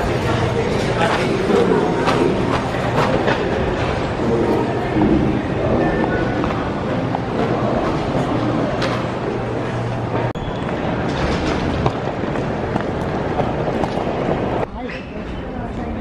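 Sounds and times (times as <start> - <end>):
footsteps: 0.0 - 14.7
echoing crowd chatter: 0.0 - 16.0
train sounds: 0.0 - 16.0.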